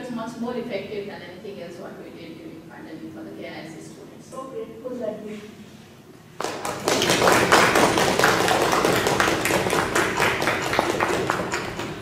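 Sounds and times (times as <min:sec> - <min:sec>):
audience applauding: 0:06.4 - 0:12.0.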